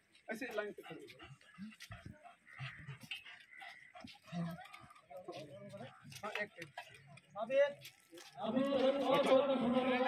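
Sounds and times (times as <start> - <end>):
people talking: 7.7 - 10.0.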